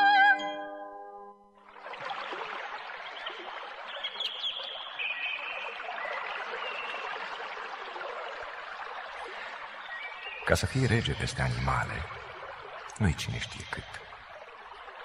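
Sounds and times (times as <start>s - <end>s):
running water: 1.6s - 15.0s.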